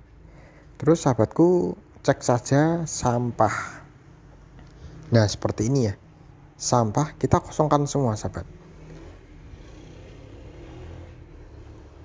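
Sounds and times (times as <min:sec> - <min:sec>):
low background hum and hiss: 0:00.0 - 0:12.0.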